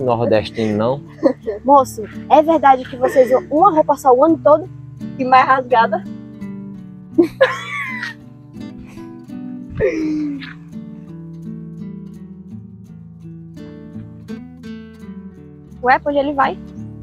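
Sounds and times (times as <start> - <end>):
plucked acoustic guitar music: 0.0 - 17.0
woman laughing: 0.6 - 3.9, 7.2 - 8.2, 9.7 - 10.6.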